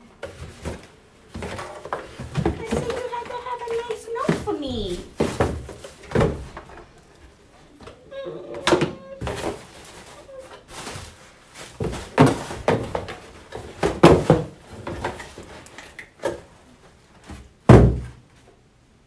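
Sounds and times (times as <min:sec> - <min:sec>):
cardboard boxes thumping and scraping: 0:00.2 - 0:06.8, 0:08.8 - 0:15.6, 0:17.2 - 0:18.2.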